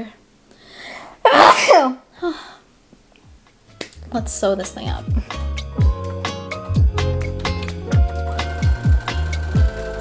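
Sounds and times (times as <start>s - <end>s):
woman sneezing: 1.2s - 2.4s
woman talking: 4.1s - 5.2s.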